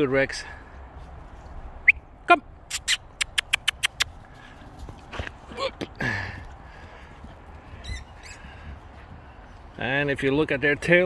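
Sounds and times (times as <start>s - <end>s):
mouth clicks: 2.7s - 4.2s.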